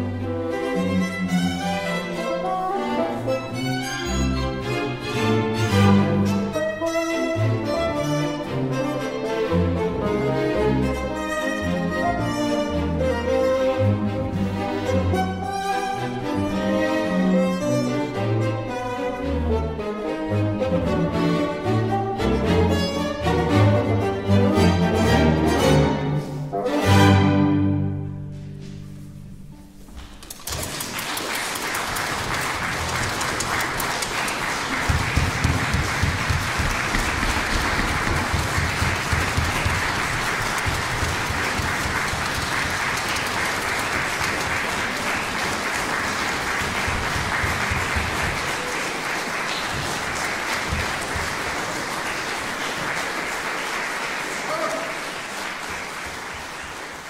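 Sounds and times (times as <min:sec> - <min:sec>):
audience applauding: 0:30.2 - 0:57.0.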